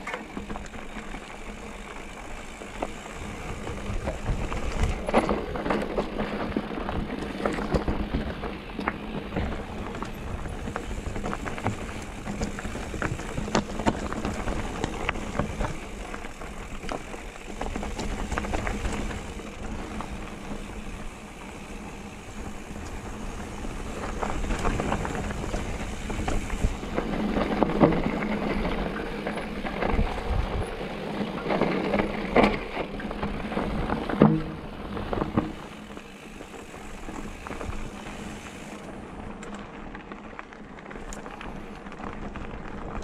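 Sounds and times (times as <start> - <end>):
bike tyres crunching over stones: 0.0 - 43.0
rocks and bike rattling: 0.0 - 43.0.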